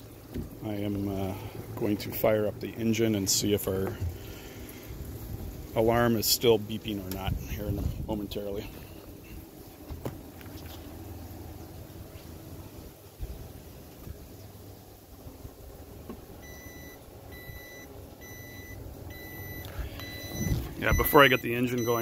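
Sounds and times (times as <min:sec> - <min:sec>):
engine alarm beeping: 0:16.4 - 0:22.0.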